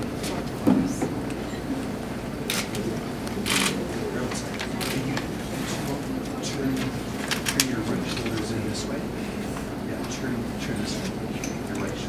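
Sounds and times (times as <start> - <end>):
murmur of people talking: 0.0 - 12.0
camera shutters clicking: 3.4 - 3.8.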